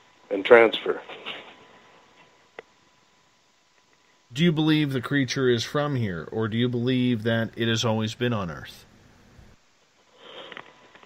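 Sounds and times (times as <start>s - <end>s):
person sniffing: 10.1s - 10.8s.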